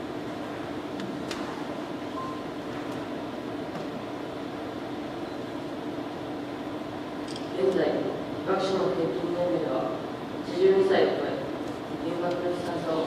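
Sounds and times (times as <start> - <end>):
ventilation hum: 0.0 - 13.0.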